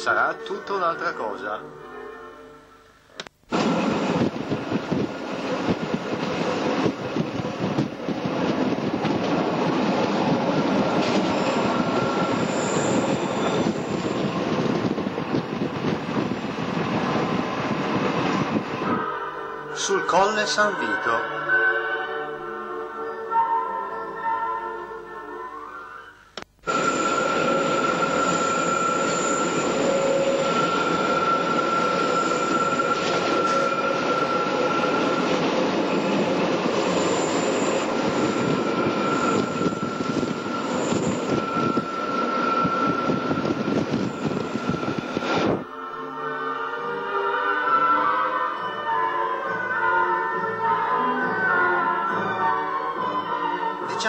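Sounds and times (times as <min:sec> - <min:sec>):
background music: 0:00.0 - 0:03.2, 0:17.0 - 0:28.2, 0:45.4 - 0:54.0
electric railcar running on track: 0:03.5 - 0:25.4, 0:26.6 - 0:54.0.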